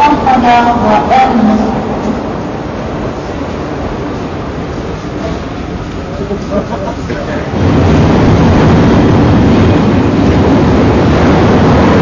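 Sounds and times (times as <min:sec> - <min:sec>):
voices: 0:00.0 - 0:02.4, 0:05.0 - 0:07.6
train rumble and hiss: 0:00.0 - 0:12.0.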